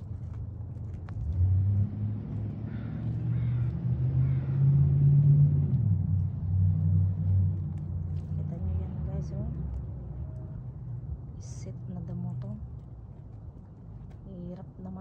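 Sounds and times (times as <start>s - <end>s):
engine rumble: 0.0s - 15.0s.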